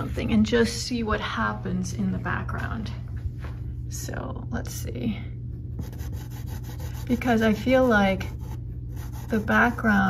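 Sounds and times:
steady low hum: 0.0s - 10.0s
pastel stick scratching on paper: 5.8s - 10.0s.

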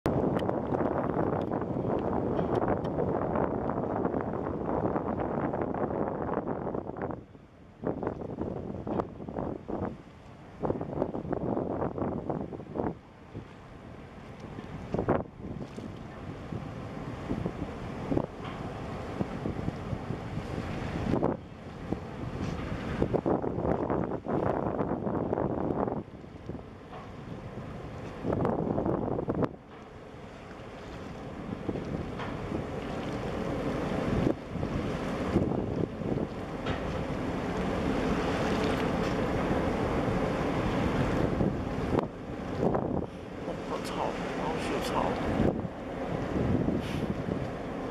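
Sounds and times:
wind buffeting microphone: 0.0s - 47.9s.

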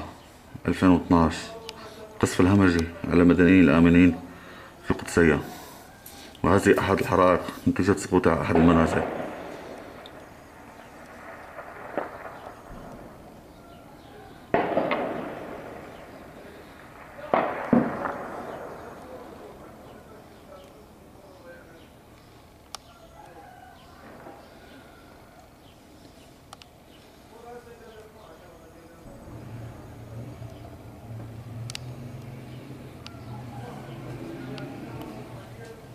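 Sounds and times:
distant gunshots echoing: 6.6s - 20.6s, 23.8s - 25.7s
low engine hum: 29.0s - 35.9s.

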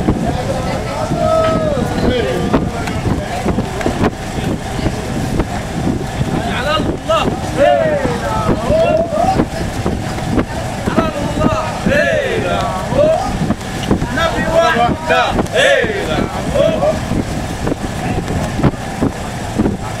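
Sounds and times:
boat engine rumble: 0.0s - 20.0s
wind on microphone: 0.0s - 20.0s
men calling out: 7.0s - 9.8s, 11.0s - 13.4s, 14.0s - 17.1s.

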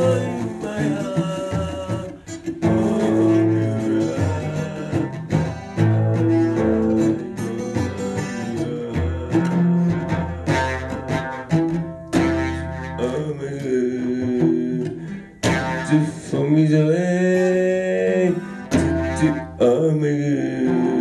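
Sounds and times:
man singing: 0.0s - 11.3s, 12.2s - 21.0s
acoustic guitar strumming chords: 0.0s - 21.0s.

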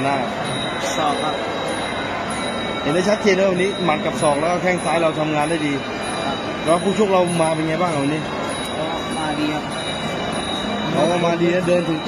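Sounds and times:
high thin tones: 0.0s - 12.0s.

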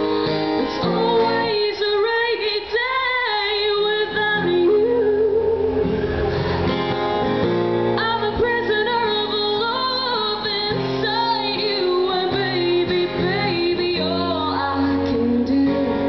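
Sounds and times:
woman singing: 0.0s - 6.0s, 8.0s - 16.0s
acoustic guitar: 0.0s - 16.0s.

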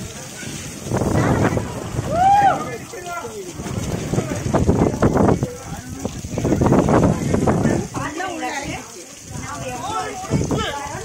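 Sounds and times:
rushing water: 0.0s - 11.0s
person whooping: 2.0s - 2.8s.

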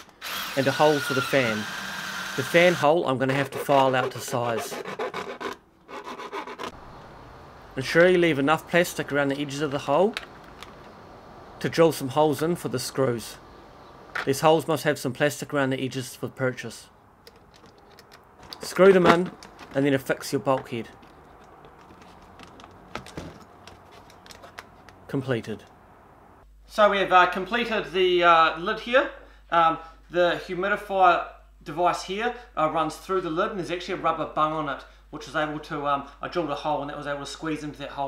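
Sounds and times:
hand file rasping in plastic: 3.3s - 6.8s.

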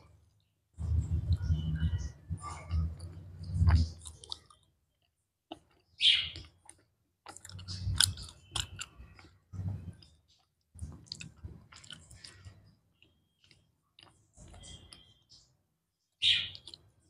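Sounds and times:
chewing wafer with mouth noises: 2.6s - 15.2s, 16.5s - 17.0s.

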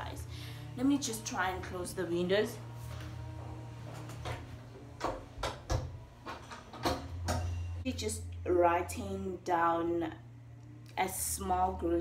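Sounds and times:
steady low hum: 0.0s - 12.0s
windows knocking and latching: 3.9s - 7.6s.

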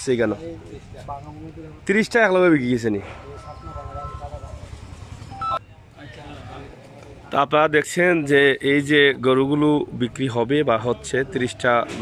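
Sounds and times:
people talking in background: 0.0s - 12.0s.

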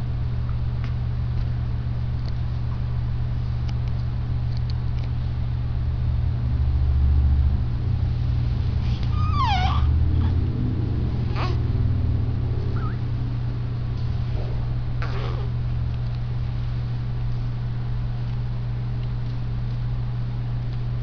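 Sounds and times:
steady low hum: 0.0s - 21.0s
newborn baby whimpering: 8.9s - 10.3s, 11.2s - 11.7s, 12.7s - 13.1s, 15.0s - 15.6s.

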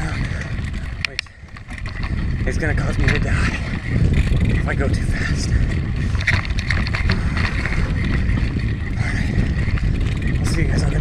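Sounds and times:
bike clicks and rattles: 0.0s - 11.0s
wind rumbling on microphone: 0.0s - 11.0s.

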